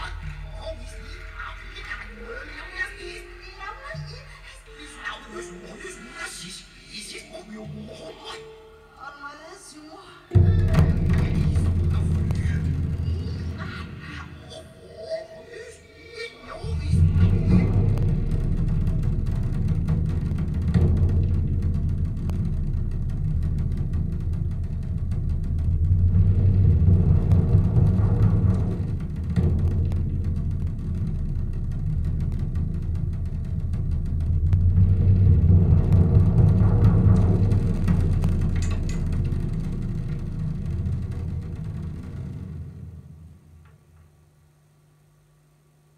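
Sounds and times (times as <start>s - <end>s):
scattered higher sounds: 0.0s - 23.5s
deep bass note: 10.3s - 14.0s, 16.6s - 43.6s.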